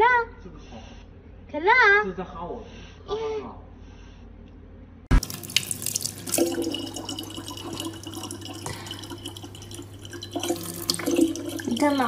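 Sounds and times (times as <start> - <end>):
tap water splashing into bottle: 5.1 - 12.0.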